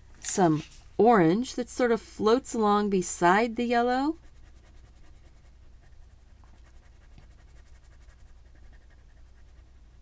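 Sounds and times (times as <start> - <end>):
colored pencil scratching on cardstock: 3.2 - 10.0.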